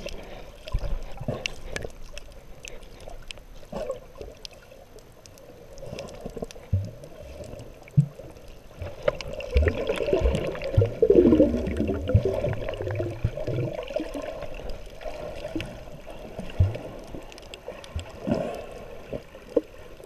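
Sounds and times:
muffled water sloshing and splashing: 0.0 - 20.0
low thumps of kicking underwater: 8.9 - 14.1.

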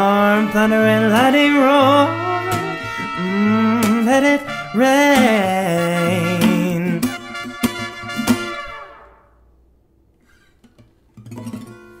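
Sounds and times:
acoustic guitar chords strummed: 0.0 - 9.4.

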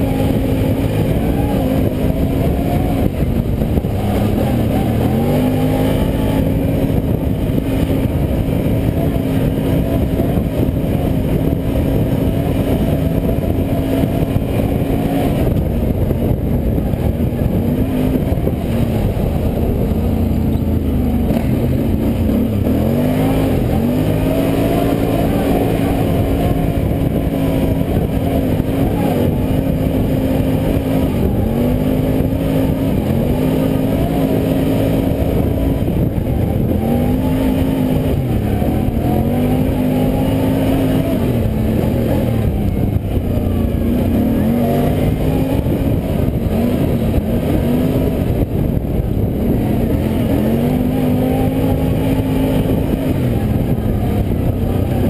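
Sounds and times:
atv engine revving: 0.0 - 55.0.

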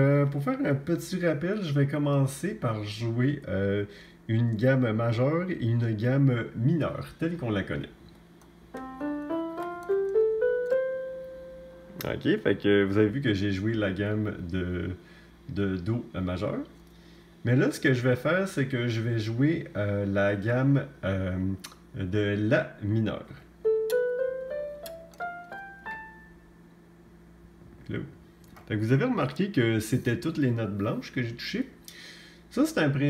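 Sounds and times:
keyboard playing ascending scale: 8.7 - 12.4, 23.6 - 26.6.

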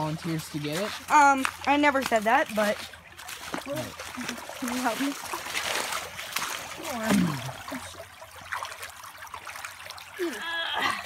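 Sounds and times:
feet wading through water: 0.0 - 11.0.

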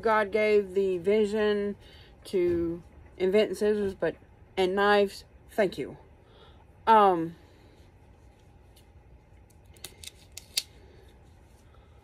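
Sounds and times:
scissors snipping packaging: 9.8 - 10.8.

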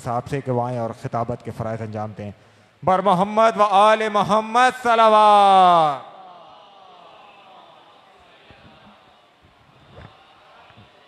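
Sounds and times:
man's voice over loudspeakers: 0.0 - 6.2.

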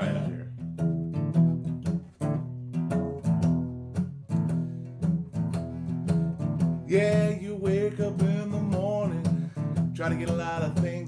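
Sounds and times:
person singing: 0.0 - 0.6, 6.8 - 11.0
acoustic guitar strumming: 0.0 - 11.0.

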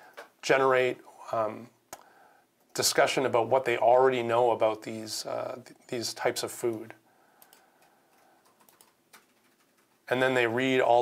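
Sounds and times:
faint computer clicks: 7.4 - 9.9.

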